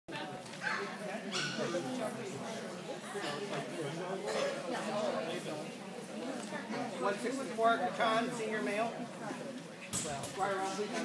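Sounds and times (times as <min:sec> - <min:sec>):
people chatting: 0:00.1 - 0:11.0.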